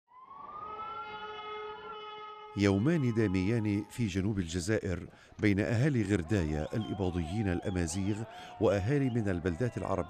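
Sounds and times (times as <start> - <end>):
siren rising pitch: 0.1 - 3.9.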